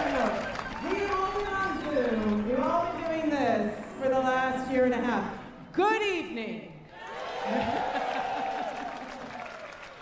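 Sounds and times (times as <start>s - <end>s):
audience applauding and cheering: 0.0s - 3.2s, 6.9s - 10.0s.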